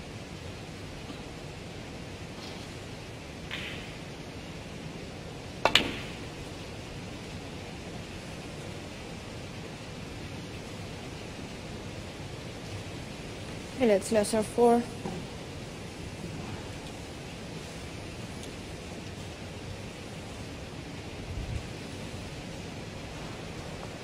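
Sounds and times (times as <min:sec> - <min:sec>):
snooker balls clicking: 0:05.6 - 0:06.3.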